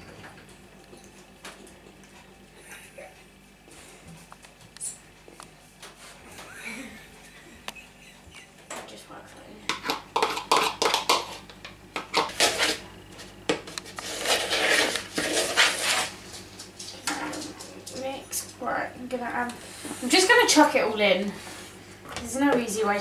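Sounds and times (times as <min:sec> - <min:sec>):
spoon scraping bowls: 0:09.7 - 0:12.9, 0:13.7 - 0:16.2.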